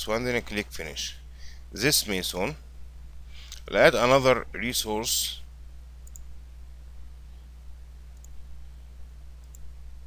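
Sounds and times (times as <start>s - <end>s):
faint computer mouse clicks: 6.0s - 6.3s, 8.2s - 8.4s, 9.4s - 9.7s.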